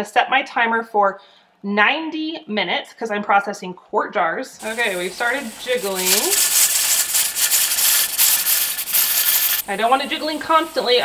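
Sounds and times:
steam hissing in pulses: 4.6 - 11.0.

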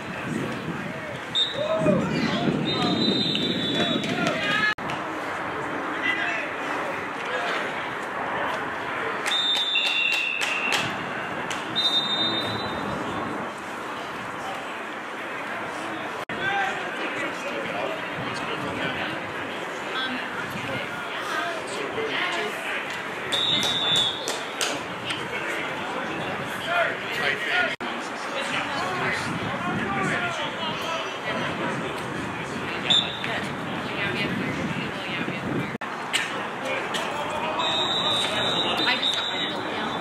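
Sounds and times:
voices of players: 0.0 - 40.0
referee whistle blasts: 1.3 - 1.7, 2.6 - 4.0, 9.3 - 10.8, 11.7 - 12.9, 23.3 - 24.3, 32.9 - 33.3, 37.6 - 40.0
sideline chatter: 13.0 - 40.0.

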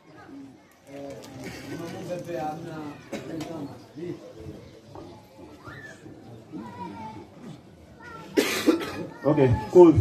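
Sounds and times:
faint murmuring voices: 0.0 - 10.0
loud cough: 8.3 - 9.2.

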